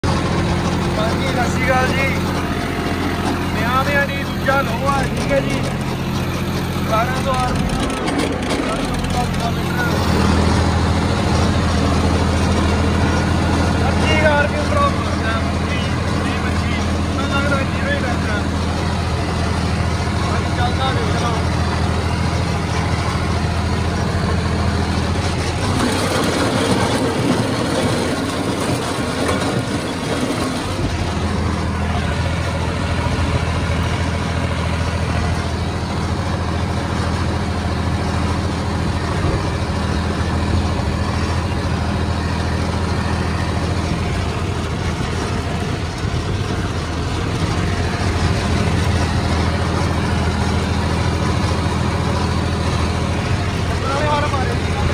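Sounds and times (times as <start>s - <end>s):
rotavator blades churning soil: 0.0s - 54.9s
tractor diesel engine running: 0.0s - 54.9s.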